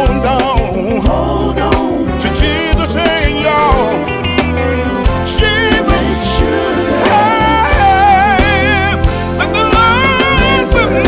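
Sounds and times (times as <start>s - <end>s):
bass: 0.0s - 11.0s
drums: 0.0s - 11.0s
gospel quartet music: 0.0s - 11.0s
lead singer: 0.0s - 11.0s.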